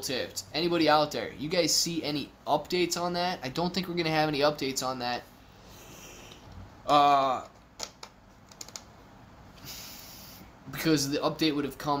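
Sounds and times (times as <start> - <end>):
computer keyboard clicks: 7.8 - 8.9
soft hiss: 8.3 - 12.0.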